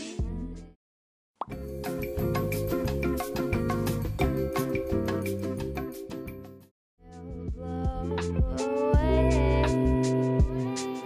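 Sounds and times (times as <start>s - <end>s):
background music with steady beat: 1.5s - 11.0s.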